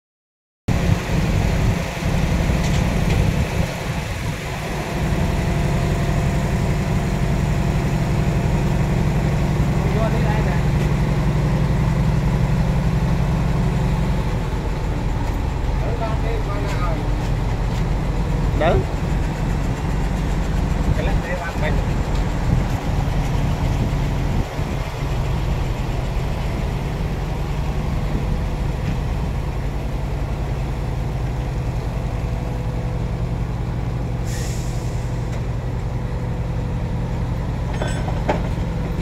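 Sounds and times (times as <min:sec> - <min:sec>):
diesel truck engine idling: 0:00.7 - 0:39.0.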